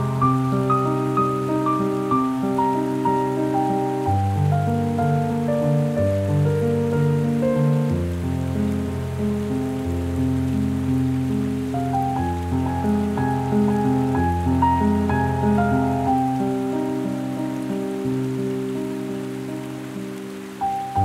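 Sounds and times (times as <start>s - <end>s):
solo piano chords: 0.0s - 21.0s.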